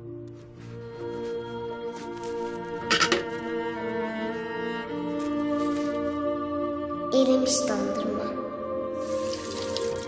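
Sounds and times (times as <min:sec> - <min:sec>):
sustained bowed strings: 0:00.6 - 0:09.8.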